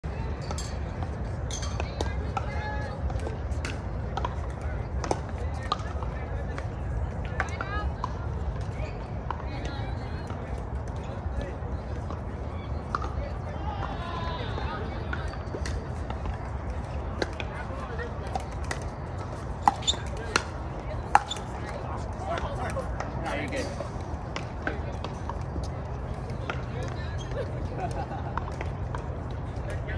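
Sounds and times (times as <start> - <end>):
paddles hitting plastic ball: 15.6 - 21.7.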